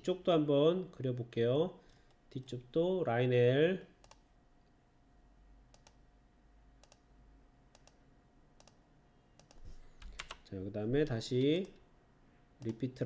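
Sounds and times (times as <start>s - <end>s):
faint steady hum: 0.0s - 13.0s
computer mouse clicks: 4.0s - 4.2s, 5.7s - 6.0s, 6.8s - 7.1s, 7.7s - 8.0s, 8.6s - 8.8s, 9.4s - 10.4s.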